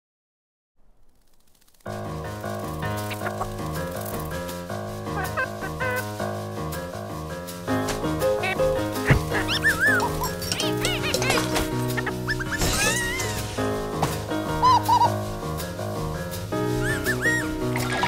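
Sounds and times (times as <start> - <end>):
instrumental background music: 1.9 - 18.0
cartoon bird chirping: 3.0 - 3.6, 5.1 - 6.2, 8.4 - 13.4, 14.6 - 15.1, 16.8 - 18.0.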